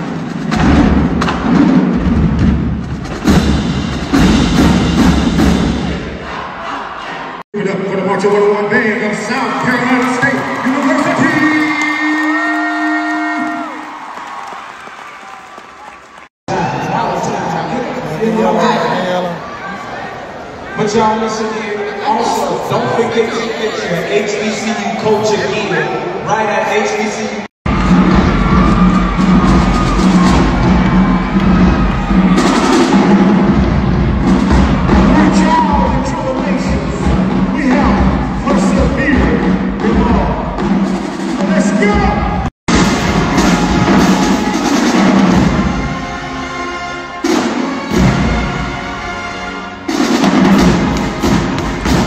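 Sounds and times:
pounding drums: 0.0s - 6.7s, 27.7s - 52.0s
marching band: 0.0s - 7.3s, 27.7s - 52.0s
crowd cheering: 8.1s - 26.8s, 27.7s - 39.0s, 41.3s - 46.7s
brass notes: 42.7s - 52.0s.

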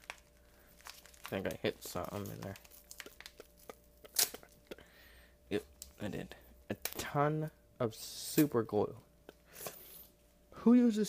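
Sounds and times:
paper envelope tearing: 0.0s - 4.5s.

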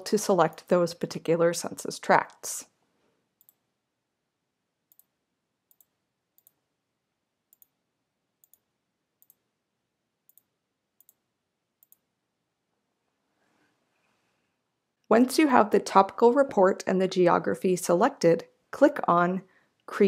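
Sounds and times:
computer mouse clicks: 3.4s - 3.6s, 4.9s - 6.6s, 7.5s - 7.8s, 8.4s - 9.4s, 10.3s - 11.2s, 11.8s - 12.1s.

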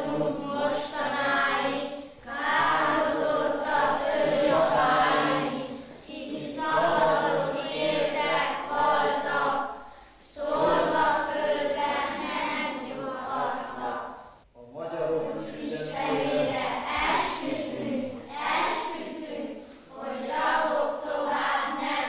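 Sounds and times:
children singing together: 0.0s - 22.0s.

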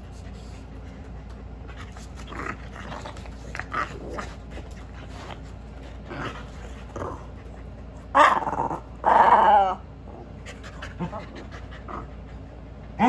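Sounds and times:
dogs vocalizing while playing: 0.0s - 13.0s.

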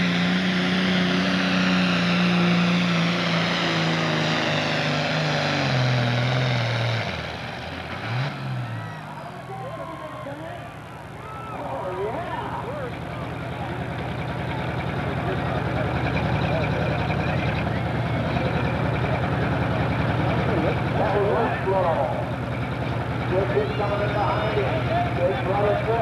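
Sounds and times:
diesel engine idling: 0.0s - 26.0s.

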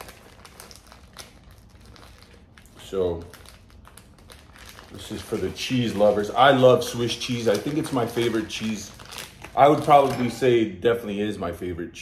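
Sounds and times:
plastic bag crinkling: 0.0s - 10.6s.

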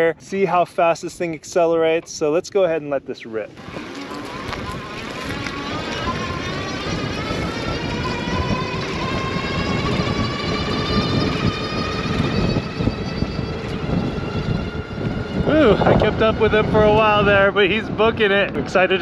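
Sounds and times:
wind rushing over microphone: 3.5s - 19.0s
electric motor whining: 3.6s - 17.7s.

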